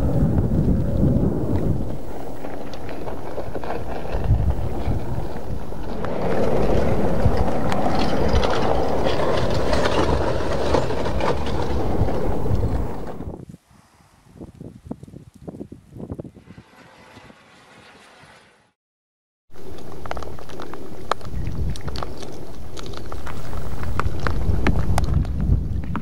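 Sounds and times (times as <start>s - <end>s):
cooling lava crackles: 0.0s - 16.5s, 19.6s - 26.0s
lava flow rushing rumble: 0.0s - 16.8s, 19.6s - 26.0s
wind on microphone: 0.0s - 18.0s, 19.6s - 26.0s.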